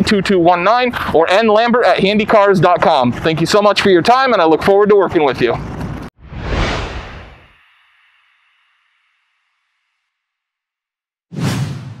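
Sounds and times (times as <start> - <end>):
whoosh sound effect: 6.2 - 7.6.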